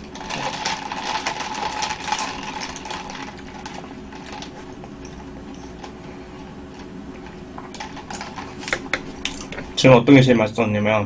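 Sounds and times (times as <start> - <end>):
slurping iced drink through straw: 0.0 - 9.9.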